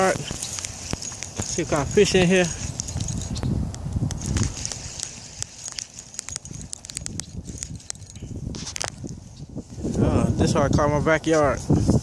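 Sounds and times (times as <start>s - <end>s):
handling noise: 0.0s - 9.5s
fishing reel clicking: 0.4s - 8.2s.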